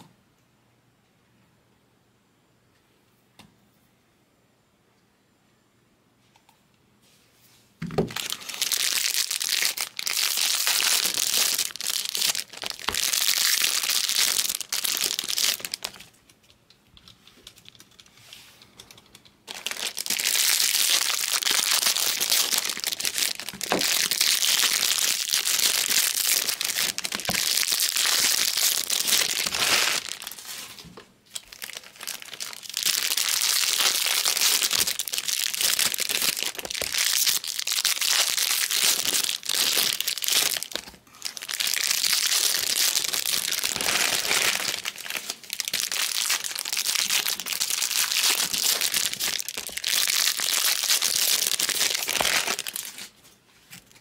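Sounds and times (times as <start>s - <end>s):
wrappers crinkling and tearing: 8.1s - 16.2s, 19.4s - 54.0s.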